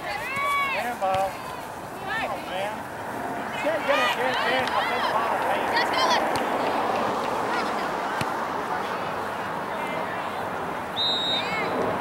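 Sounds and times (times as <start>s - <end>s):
hum of chatter: 0.0s - 12.0s.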